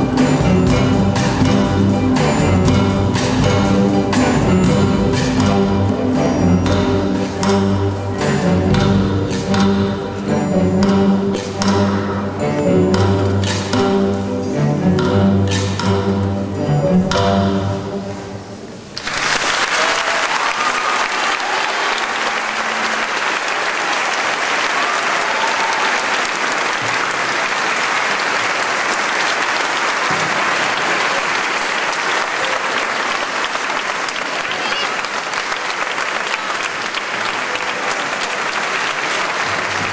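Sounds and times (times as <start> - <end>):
audience applauding: 19.0 - 39.9.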